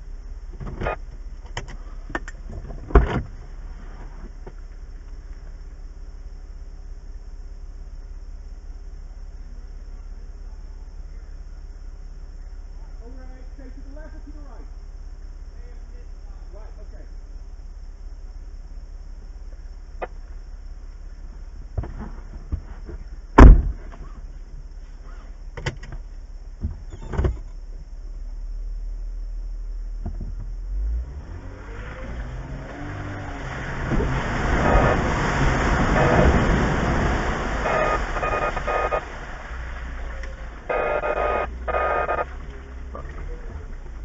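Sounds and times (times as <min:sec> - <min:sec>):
vehicle engine revving: 0:30.5 - 0:44.0.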